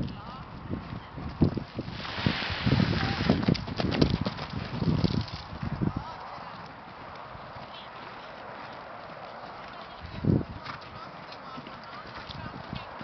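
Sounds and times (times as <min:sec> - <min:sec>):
horse hoofbeats on sand: 0:00.0 - 0:13.0.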